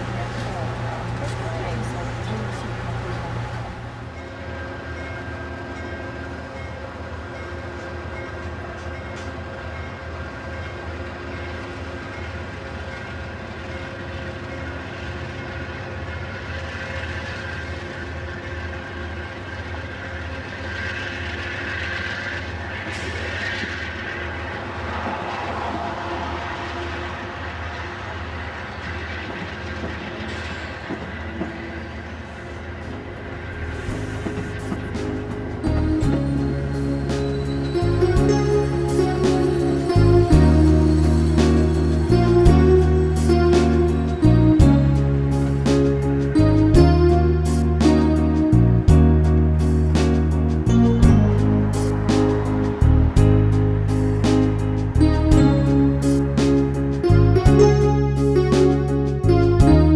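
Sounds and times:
train rumbling on rails: 0.0 - 59.9
wheels clacking over track: 16.5 - 37.8.

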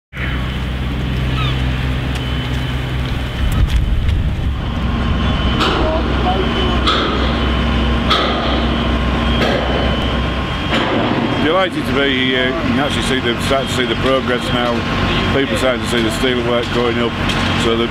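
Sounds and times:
construction machinery engine hum: 0.1 - 17.9.

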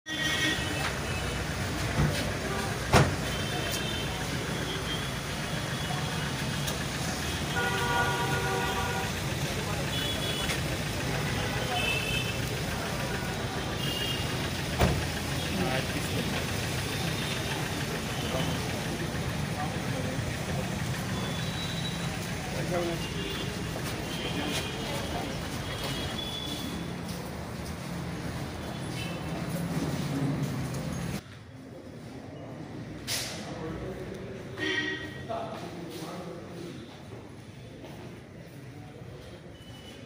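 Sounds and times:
crowd chatter: 0.1 - 40.0
engine idling: 1.0 - 26.6.

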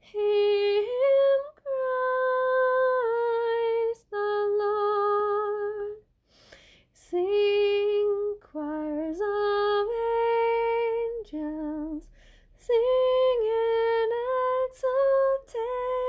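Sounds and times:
woman singing unaccompanied hymn: 0.0 - 6.0, 7.0 - 16.0.

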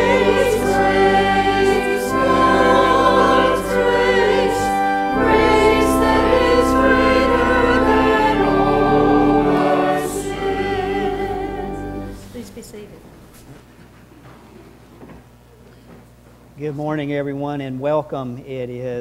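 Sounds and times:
church choir singing: 0.0 - 12.4.

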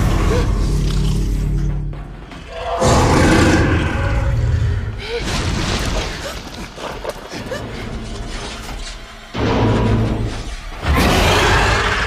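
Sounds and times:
tense film score: 0.0 - 12.0.

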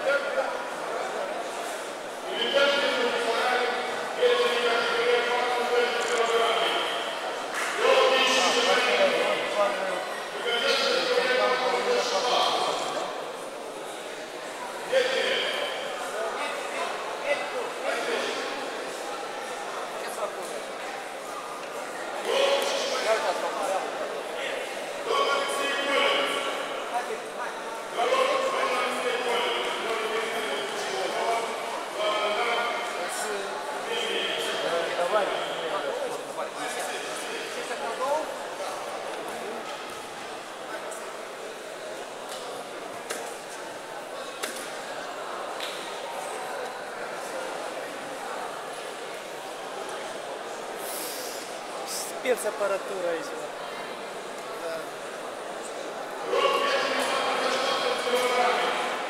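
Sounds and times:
spectators calling and chattering: 0.0 - 59.0.

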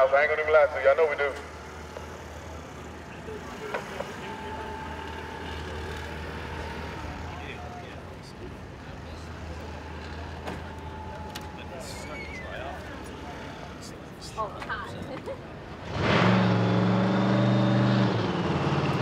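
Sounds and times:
car engines idling: 0.0 - 17.4.

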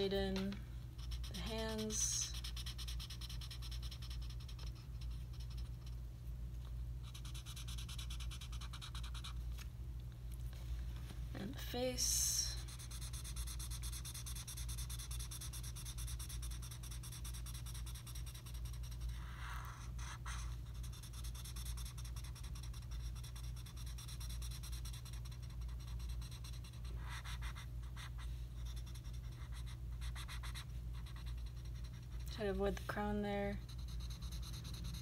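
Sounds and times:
steady low hum: 0.0 - 35.0
marker rubbing on paper: 1.0 - 6.0, 7.0 - 9.4, 12.0 - 32.6, 33.5 - 35.0.

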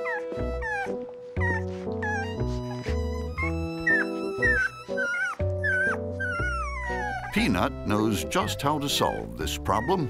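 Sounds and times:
background music with held chords: 0.0 - 10.0
puppy whimpering: 0.0 - 10.0.

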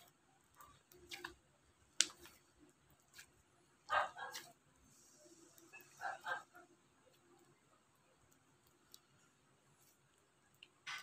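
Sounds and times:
slime popping: 0.6 - 3.4.

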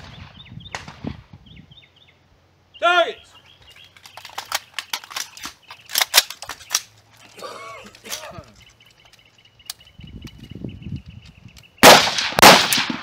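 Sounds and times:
rifle shots: 11.8 - 13.0.

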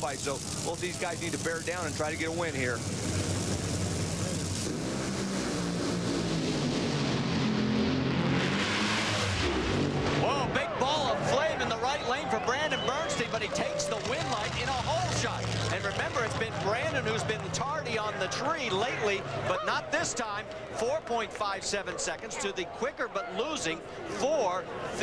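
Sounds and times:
dragster engines at full throttle: 0.0 - 19.5
voices: 10.2 - 25.0.

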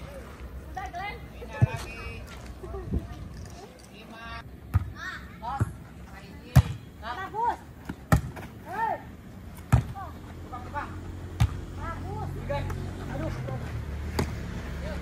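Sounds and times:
volleyball slaps: 7.8 - 8.5, 11.4 - 11.7, 14.1 - 14.4.

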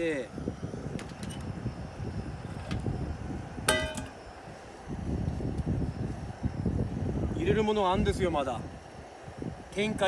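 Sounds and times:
metal lid ringing on pot: 3.7 - 4.1.

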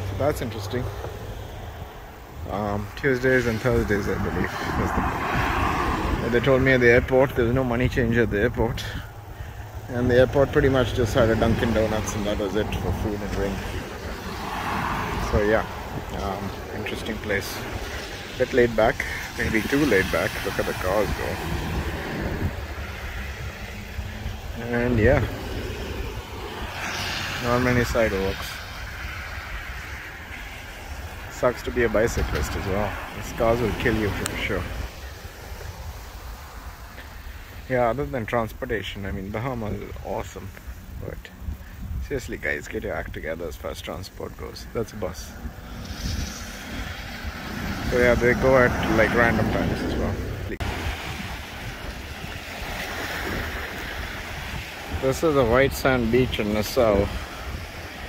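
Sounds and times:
tyres hissing through water: 0.0 - 7.8, 8.7 - 58.0
wind on microphone: 0.0 - 37.7, 39.1 - 58.0
low rumble of traffic: 0.0 - 58.0
surf washing up a beach: 0.0 - 58.0.

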